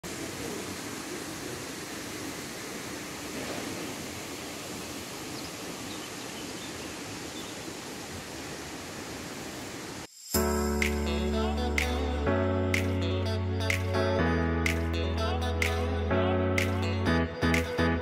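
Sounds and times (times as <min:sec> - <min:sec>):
outdoor ambience rushing noise: 0:00.0 - 0:11.0.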